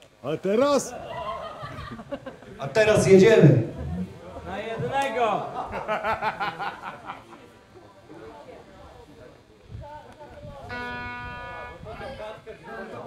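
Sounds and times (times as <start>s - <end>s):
faint voices: 0.6s - 13.0s
electric guitar note: 10.6s - 12.2s.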